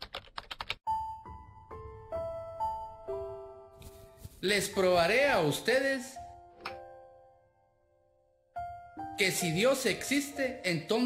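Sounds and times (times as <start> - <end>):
key clicks typing: 0.0 - 0.8.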